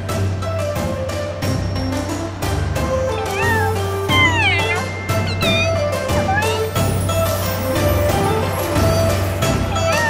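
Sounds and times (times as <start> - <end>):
upbeat background music: 0.0 - 10.0
cat meowing: 3.1 - 6.9, 9.7 - 10.0.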